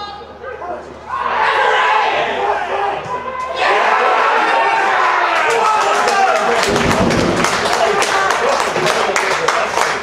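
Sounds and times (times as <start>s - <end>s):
voices shouting and cheering: 0.0s - 9.2s
hand clapping: 5.5s - 10.0s.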